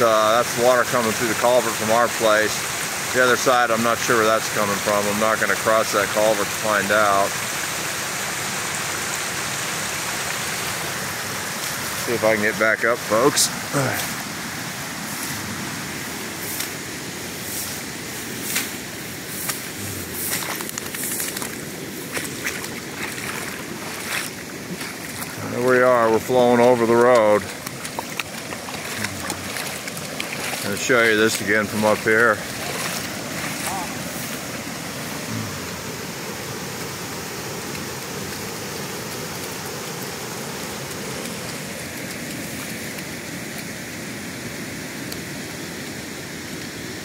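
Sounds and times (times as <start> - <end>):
floodwater rushing: 0.0 - 47.0.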